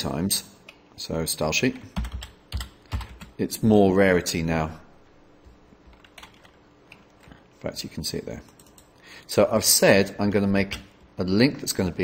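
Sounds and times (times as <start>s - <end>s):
faint typing on a keyboard: 1.8s - 3.4s, 5.4s - 7.4s, 8.3s - 9.3s.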